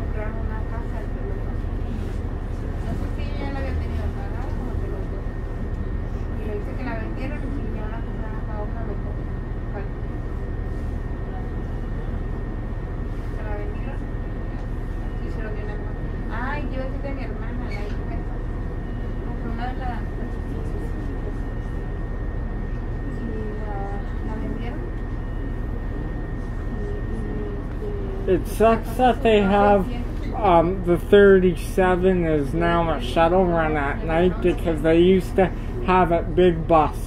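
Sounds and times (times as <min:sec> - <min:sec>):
bus engine drone: 0:00.0 - 0:37.0.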